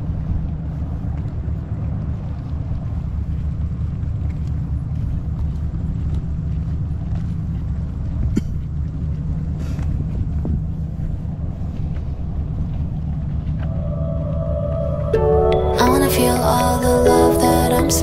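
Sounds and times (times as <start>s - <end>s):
low outdoor rumble: 0.0s - 18.0s.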